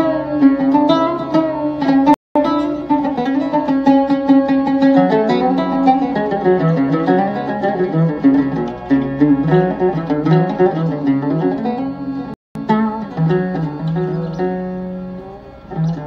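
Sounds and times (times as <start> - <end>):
oud plucked melody: 0.0 - 16.0.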